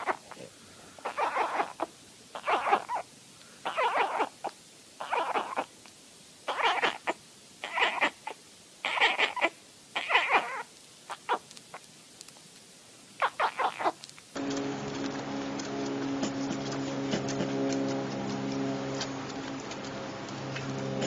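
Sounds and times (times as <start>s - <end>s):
kitten mewing: 0.0s - 5.8s, 6.5s - 11.5s, 13.2s - 14.1s.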